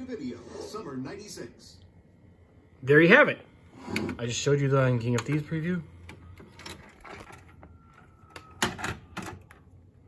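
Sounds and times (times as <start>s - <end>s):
faint whine: 0.0s - 10.0s.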